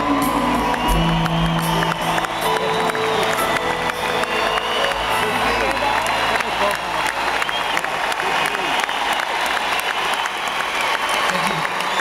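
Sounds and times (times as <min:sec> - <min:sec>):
audience clapping: 0:00.0 - 0:12.0
crowd voices and shouts: 0:00.0 - 0:12.0.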